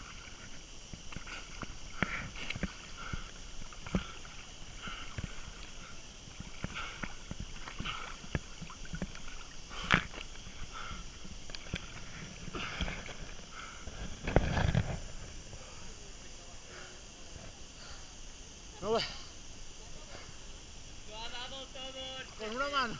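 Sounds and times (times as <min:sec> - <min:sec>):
water splashing from swimming: 0:00.0 - 0:15.8, 0:22.0 - 0:22.9.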